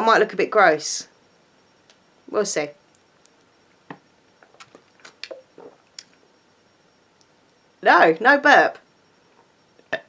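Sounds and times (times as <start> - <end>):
person sipping and swallowing: 4.4 - 6.1.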